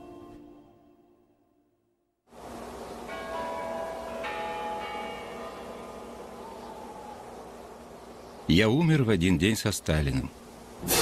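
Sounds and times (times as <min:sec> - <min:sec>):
steady hiss: 0:02.3 - 0:04.2, 0:06.2 - 0:11.0
bell-like chimes: 0:03.1 - 0:05.8.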